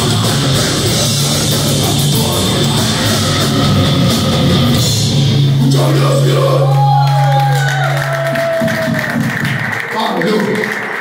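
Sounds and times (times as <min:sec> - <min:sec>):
crowd cheering: 0:05.7 - 0:11.0.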